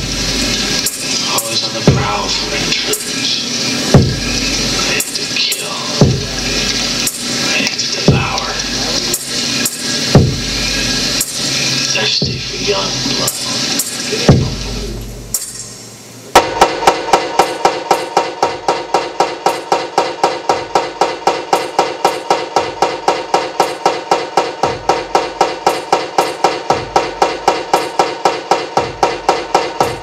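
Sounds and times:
electronic music clanking beat: 0.0s - 30.0s.

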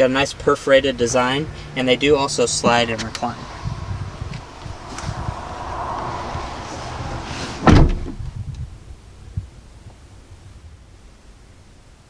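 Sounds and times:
car seat sliding on track: 6.5s - 8.3s
heavy thump: 6.6s - 8.4s.

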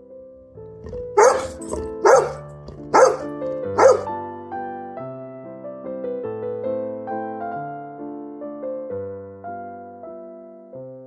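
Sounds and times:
soft piano music: 0.0s - 11.0s
dog barking: 0.8s - 4.1s.

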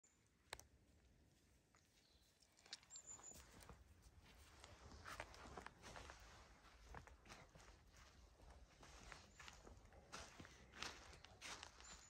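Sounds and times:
footsteps on pine needles: 4.3s - 12.0s.

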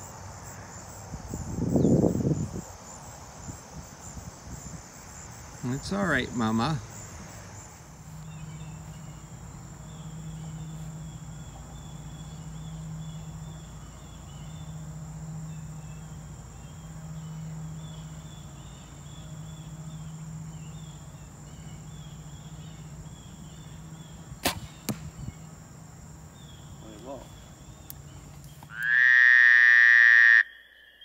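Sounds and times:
insects chirping: 0.0s - 31.0s
low hum: 6.8s - 28.7s
bowstring crack on release: 24.4s - 25.2s
arrow hitting target: 24.4s - 25.3s.

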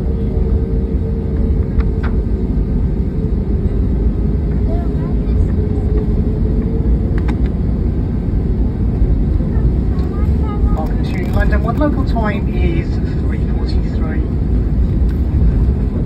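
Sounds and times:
jet engines rumbling: 0.0s - 16.0s
steady cabin hum: 0.0s - 16.0s.

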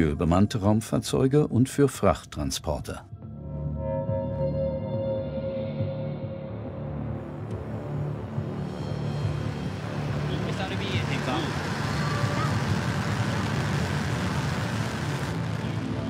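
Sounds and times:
low background music: 0.0s - 16.0s
rocket engines roaring: 8.5s - 16.0s.

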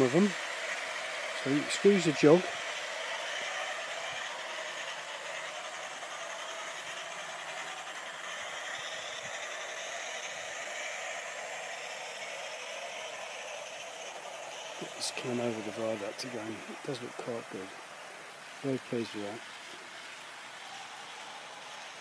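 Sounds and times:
model train rolling on track: 0.0s - 22.0s.

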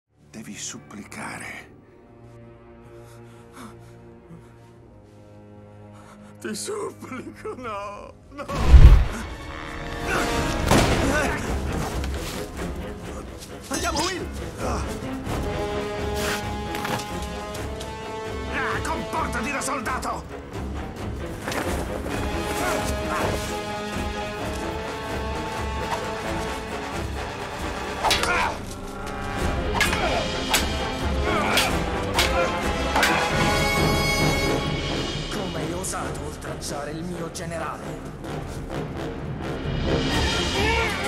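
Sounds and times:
film score music: 0.1s - 41.0s
sabre and wooden pole clashing: 28.0s - 33.5s.

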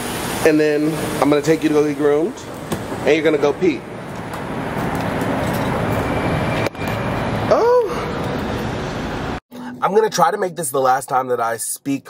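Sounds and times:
car road and engine noise: 0.0s - 9.4s.

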